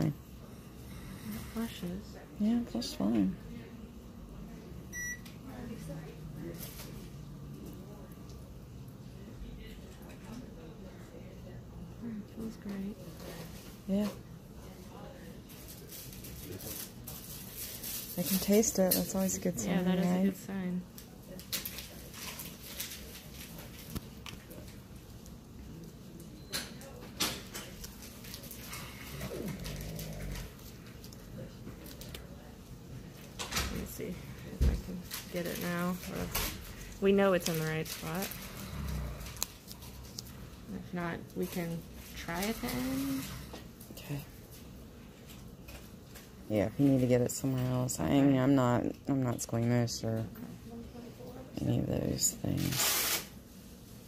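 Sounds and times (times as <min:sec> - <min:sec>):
medical tape clicks and crinkles: 0:20.9 - 0:32.3, 0:35.0 - 0:38.6, 0:39.2 - 0:40.4.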